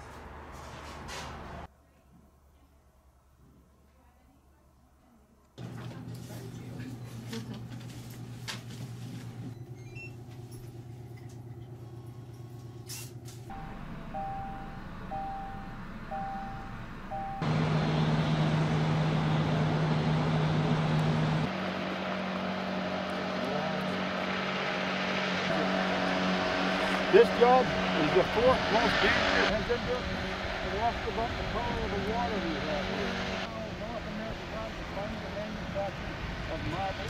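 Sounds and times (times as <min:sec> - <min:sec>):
heavy engine running: 0:09.3 - 0:37.0
short beeps: 0:13.5 - 0:17.4.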